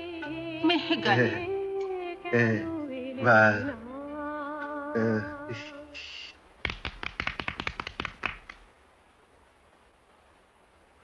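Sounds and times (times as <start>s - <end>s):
rapid sharp taps: 6.6s - 8.7s.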